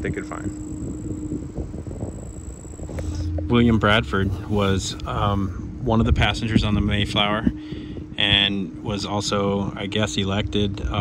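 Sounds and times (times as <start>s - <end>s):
high-pitched whine: 0.0s - 11.0s
low rumble: 0.0s - 11.0s
steady low hum: 0.0s - 11.0s.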